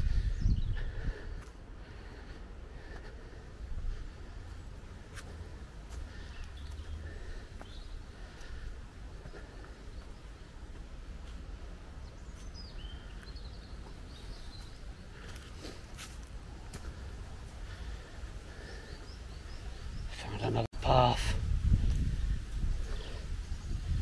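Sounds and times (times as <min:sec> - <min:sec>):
steady low rumble: 0:00.0 - 0:20.1
small birds chirping: 0:00.0 - 0:24.0
footsteps on dirt path: 0:01.3 - 0:20.0, 0:21.6 - 0:23.1.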